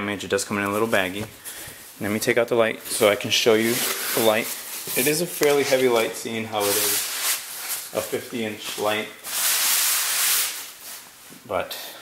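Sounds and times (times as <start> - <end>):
packaging rustling: 2.8 - 11.2.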